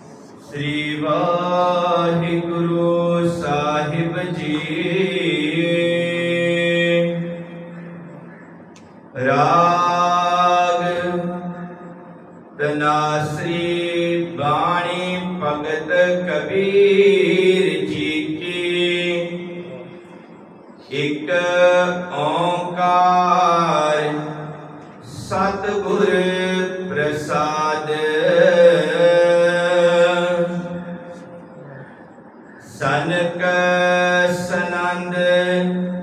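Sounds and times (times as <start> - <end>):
man chanting: 0.0 - 36.0
man reciting in sung intonation: 0.0 - 36.0.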